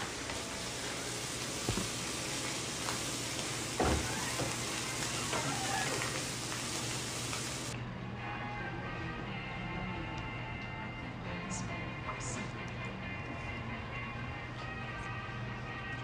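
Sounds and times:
steady hiss: 0.0 - 7.8.

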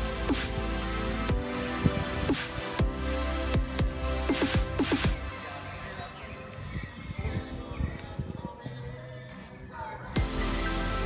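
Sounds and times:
electronic music drum hits: 1.3 - 5.3.

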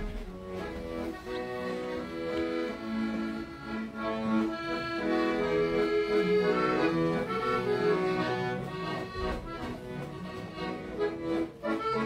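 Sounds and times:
piano accordion playing a hymn: 0.0 - 12.0.

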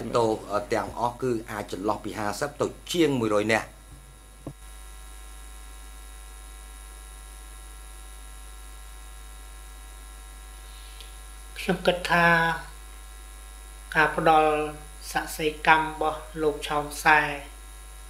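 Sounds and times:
man speaking: 0.0 - 3.8
electrical mains hum: 0.0 - 18.0.

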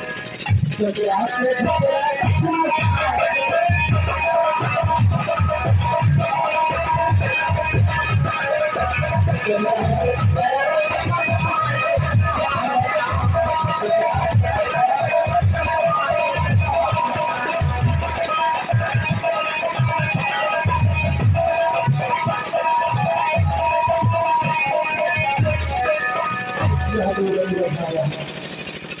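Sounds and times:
amplified folk dance music: 0.0 - 29.0.

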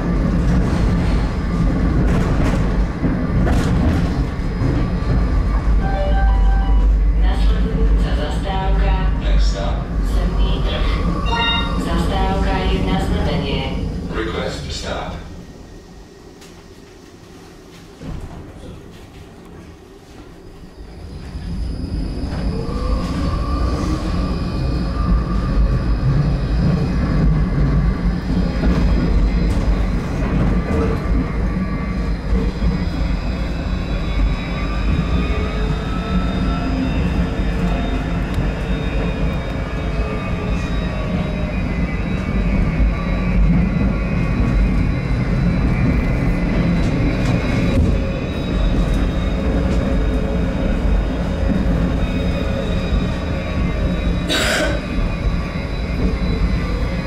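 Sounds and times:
wheels rumbling on rails: 0.0 - 14.8, 16.3 - 57.0
tram motor whine: 0.0 - 57.0.

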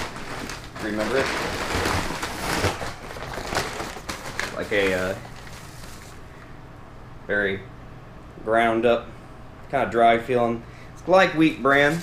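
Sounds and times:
paper sack rustling: 0.0 - 6.2.

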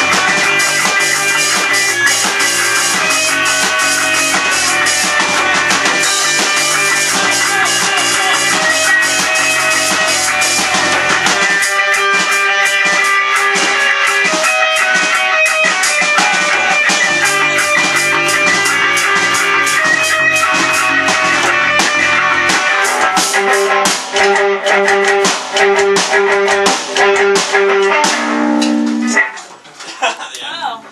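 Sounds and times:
guitar choppy stabs: 0.0 - 29.8
rock band playing loudly: 0.0 - 30.9.

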